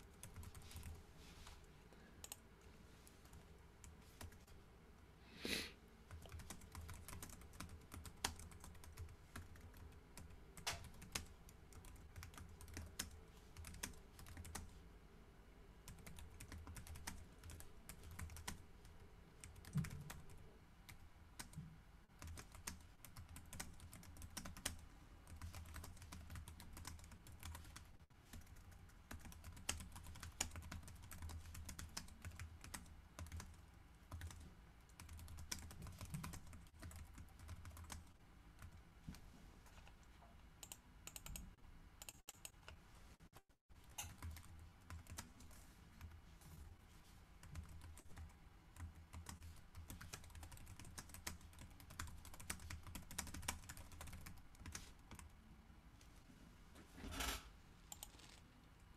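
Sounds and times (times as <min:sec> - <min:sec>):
keyboard typing: 0:06.1 - 0:14.7, 0:15.9 - 0:18.6, 0:19.4 - 0:21.6, 0:22.2 - 0:38.8, 0:40.6 - 0:42.8, 0:43.8 - 0:46.2, 0:47.4 - 0:55.3, 0:57.2 - 0:58.4.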